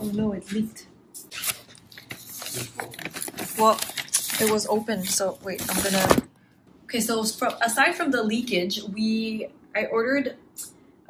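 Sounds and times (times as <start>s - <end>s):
tissue paper rustling: 1.9s - 6.2s.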